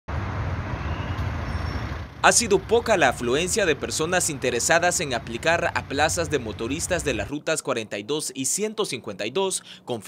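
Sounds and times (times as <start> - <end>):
approaching vehicle engine and tyres: 0.1 - 7.3.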